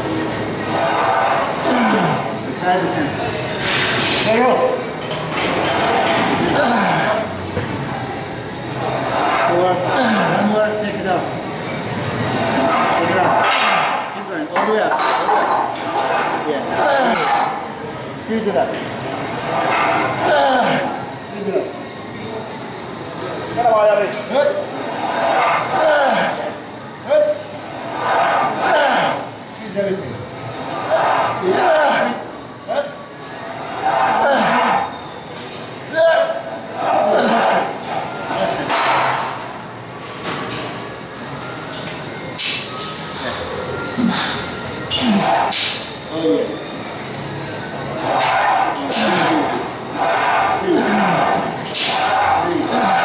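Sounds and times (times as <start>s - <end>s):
man grunting and groaning with strain: 1.6s - 2.3s, 6.4s - 7.3s, 25.7s - 26.5s, 31.0s - 32.9s, 50.6s - 51.6s.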